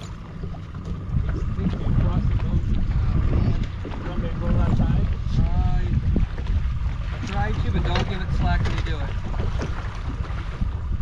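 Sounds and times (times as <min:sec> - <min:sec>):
low rumble: 0:00.0 - 0:11.0
water slapping a boat hull: 0:00.0 - 0:11.0
wind buffeting the microphone: 0:00.0 - 0:11.0.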